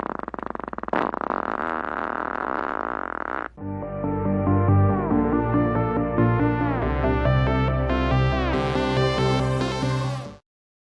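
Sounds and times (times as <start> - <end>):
comic fart sounds: 0.0 - 3.6
synth music: 3.6 - 10.4.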